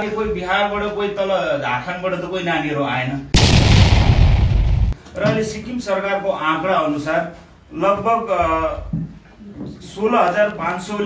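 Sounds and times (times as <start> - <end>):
loud low boom impact: 3.4 - 5.0.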